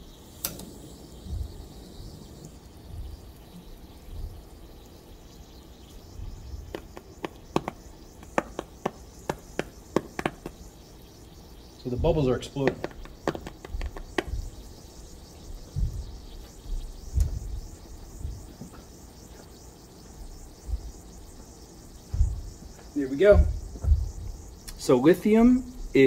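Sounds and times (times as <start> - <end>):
small sharp pops: 5.9 - 10.8, 12.5 - 14.7.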